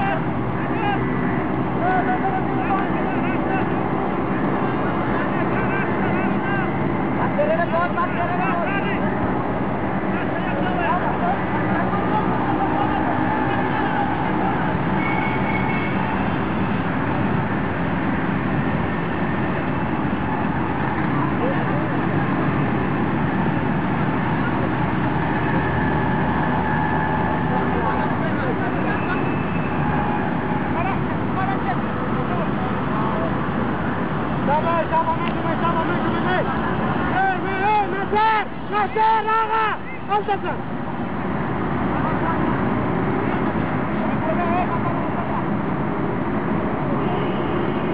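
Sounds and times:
distant players shouting: 0.0 - 16.8, 23.5 - 32.5, 34.4 - 40.6
outdoor background noise: 0.0 - 47.9.

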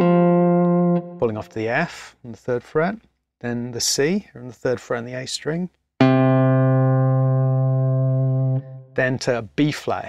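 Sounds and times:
electric guitar note ringing: 0.0 - 1.5, 6.0 - 9.0.

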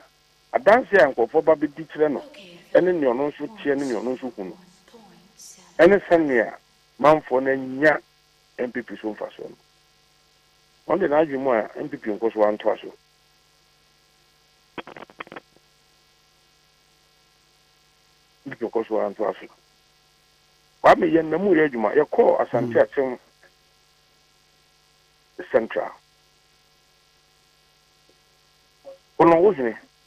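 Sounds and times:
electrical mains hum: 0.0 - 30.0
telephone-like voice: 0.6 - 6.4.

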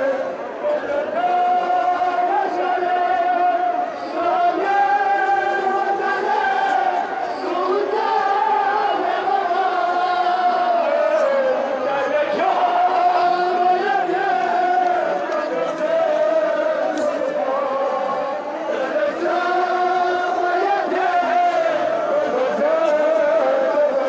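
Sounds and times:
large crowd: 0.0 - 24.0
men chanting a lament: 0.0 - 24.0.

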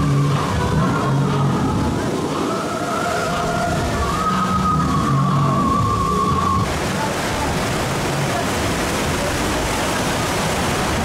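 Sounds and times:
rushing water: 0.0 - 11.0.

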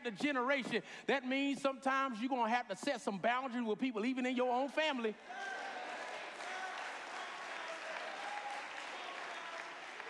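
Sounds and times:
congregation applauding: 5.2 - 10.0.

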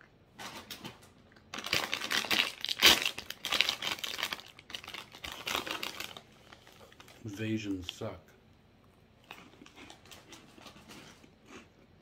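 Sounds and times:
plastic snack bag crinkling: 0.4 - 8.0, 9.3 - 11.6.

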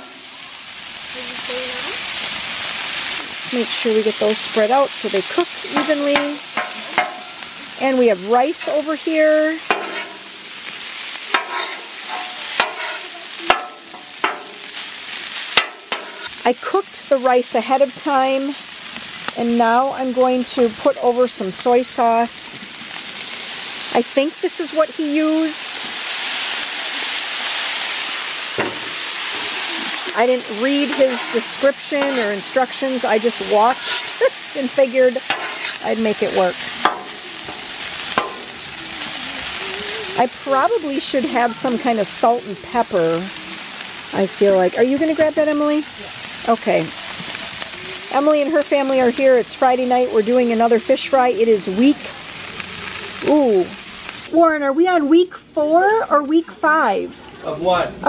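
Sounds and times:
shrimp sizzling on griddle: 0.0 - 58.0.

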